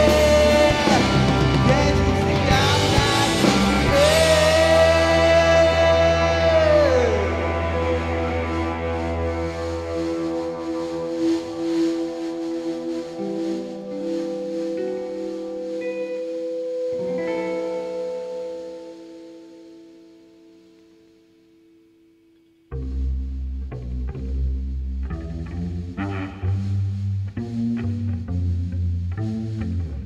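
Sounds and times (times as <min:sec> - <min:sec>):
rock band playing: 0:00.0 - 0:19.8
held guitar chord ringing: 0:00.0 - 0:21.9.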